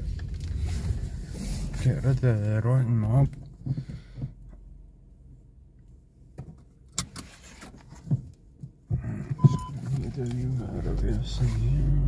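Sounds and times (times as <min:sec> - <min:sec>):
clicks and knocks in car cabin: 0:03.0 - 0:04.6, 0:06.3 - 0:11.4
short electronic beep: 0:09.4 - 0:09.7.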